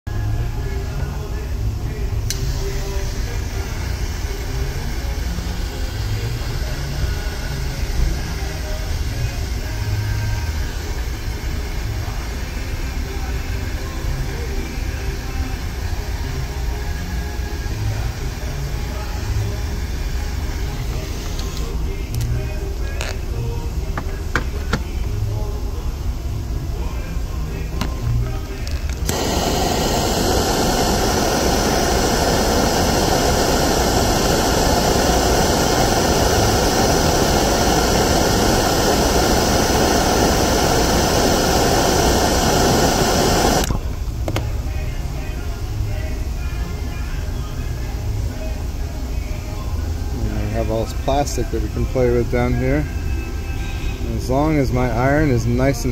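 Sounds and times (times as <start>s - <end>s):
low hum: 0.1s - 55.7s
gas torch flame hissing: 0.6s - 45.0s.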